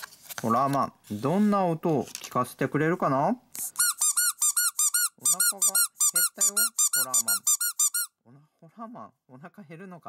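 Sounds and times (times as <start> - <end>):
squeeze toy squeaking: 3.6 - 8.2.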